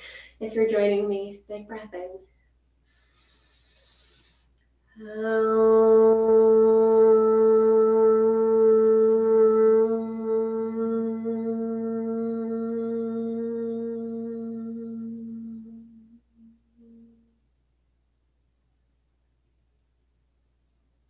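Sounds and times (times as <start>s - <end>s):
woman chanting om: 4.9s - 17.3s.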